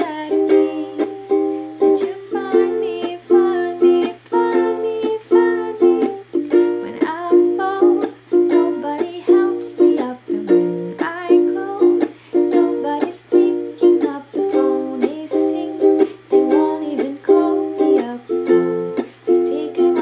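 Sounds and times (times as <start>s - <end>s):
ukulele strumming: 0.0s - 20.0s
woman singing: 0.0s - 20.0s.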